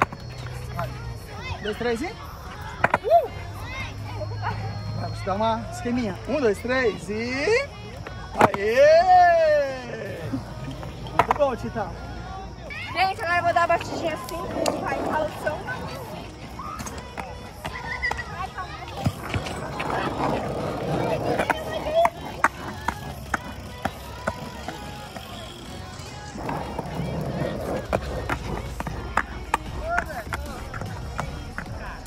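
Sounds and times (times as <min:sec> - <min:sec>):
skateboard clicks and knocks: 0:00.0 - 0:01.0, 0:02.5 - 0:03.8, 0:08.0 - 0:08.9, 0:10.6 - 0:11.7, 0:13.0 - 0:32.0
skateboard wheels rolling on concrete: 0:00.0 - 0:32.0.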